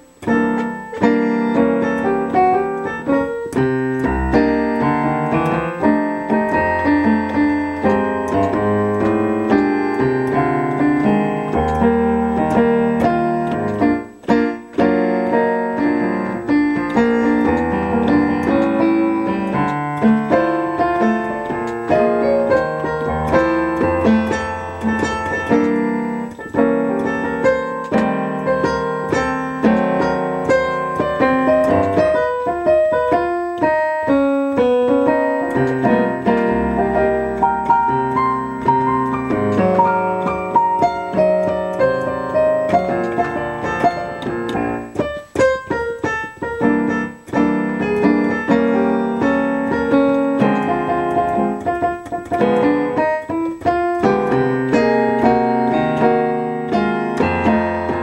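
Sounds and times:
solo piano: 0:00.0 - 0:58.0.

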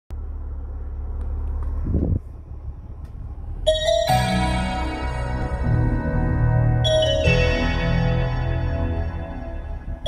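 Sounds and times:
low car cabin rumble: 0:00.1 - 0:10.0
song through car speakers: 0:03.7 - 0:10.0.

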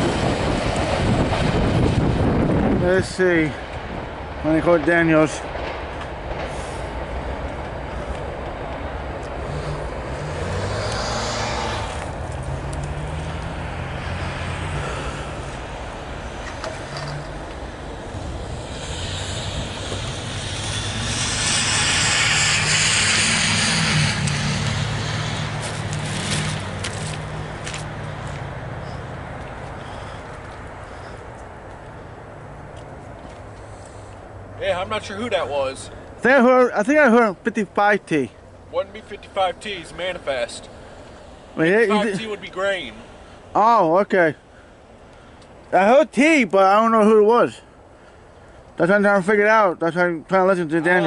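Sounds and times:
engine running low hum: 0:00.0 - 0:36.2
vehicle passing: 0:00.0 - 0:45.7.

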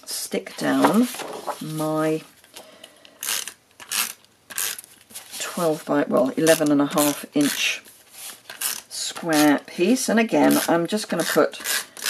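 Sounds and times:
tape runner rasping on paper: 0:08.5 - 0:09.6.

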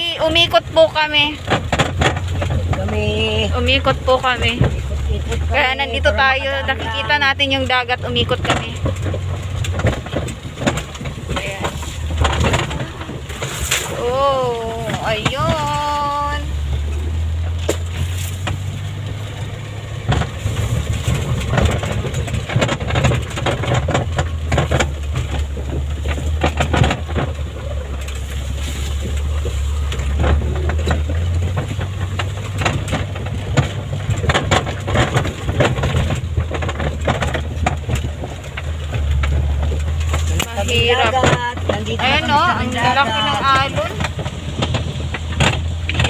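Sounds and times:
small vehicle engine droning: 0:00.0 - 0:46.0
vehicle body knocking and rattling: 0:00.0 - 0:46.0.

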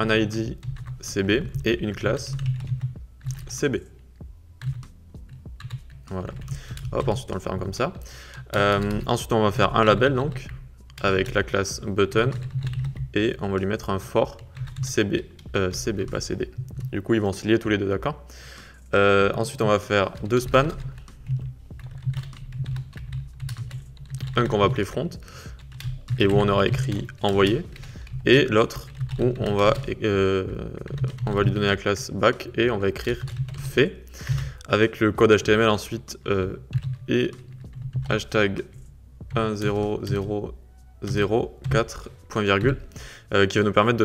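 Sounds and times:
computer keyboard typing: 0:00.0 - 0:04.0, 0:04.6 - 0:44.0
low steady hum: 0:00.0 - 0:44.0.

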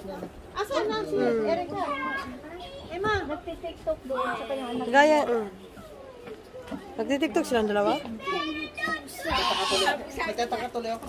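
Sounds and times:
children calling out and chattering: 0:00.1 - 0:11.0.

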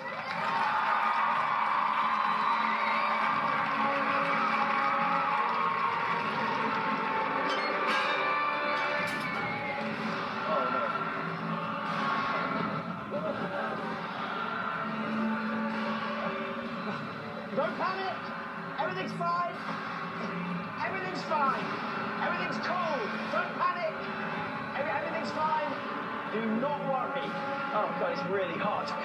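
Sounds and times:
crowd noise: 0:00.0 - 0:29.0
music through tv speaker: 0:00.0 - 0:29.0.

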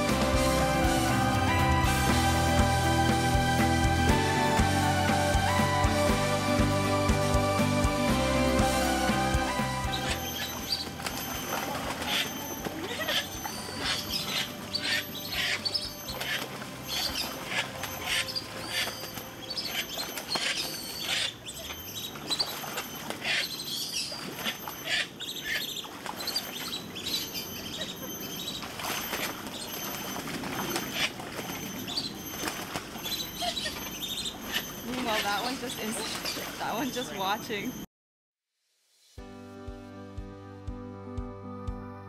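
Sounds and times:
water splashing: 0:07.7 - 0:37.7
ducks flapping wings: 0:09.8 - 0:20.7.

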